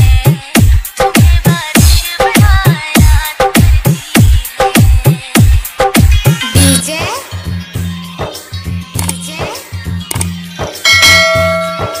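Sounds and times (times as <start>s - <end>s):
background music with steady beat: 0.0s - 12.0s
bell chime: 10.8s - 12.0s.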